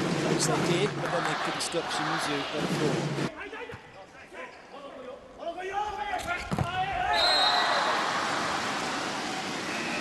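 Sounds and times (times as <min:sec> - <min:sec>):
voices in an arena: 0:00.0 - 0:10.0
crowd cheering: 0:00.4 - 0:03.0, 0:07.1 - 0:10.0.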